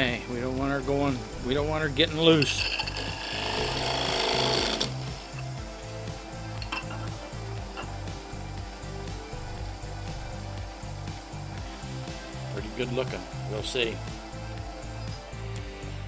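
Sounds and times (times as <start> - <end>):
background music with soft beat: 0.0 - 16.0
tool cutting wood on lathe: 2.2 - 5.4.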